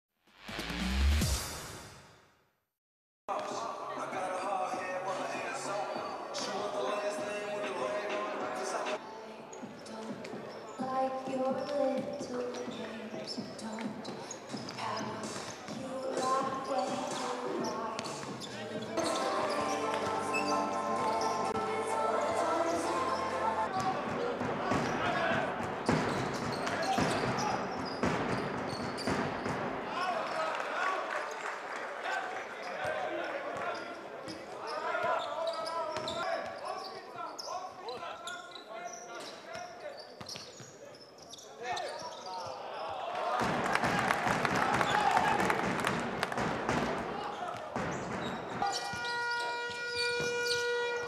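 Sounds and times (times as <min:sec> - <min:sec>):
voices talking: 0:03.4 - 0:25.7
basketballs bouncing on a court: 0:09.6 - 0:19.2, 0:23.7 - 0:29.7, 0:43.4 - 0:51.0
voices calling out: 0:13.6 - 0:27.7.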